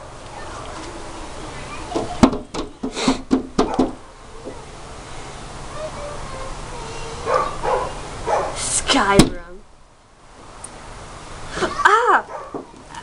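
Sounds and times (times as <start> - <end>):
laughter and shrieks: 11.6 - 12.3.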